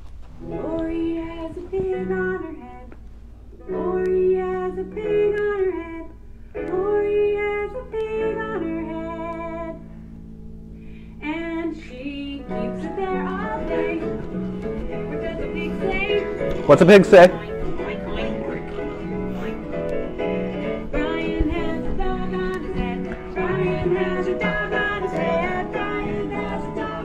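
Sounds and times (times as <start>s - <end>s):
acoustic guitar: 0.0s - 27.0s
woman singing: 0.4s - 2.9s, 3.6s - 9.8s, 11.2s - 16.7s, 17.4s - 19.5s, 20.6s - 27.0s.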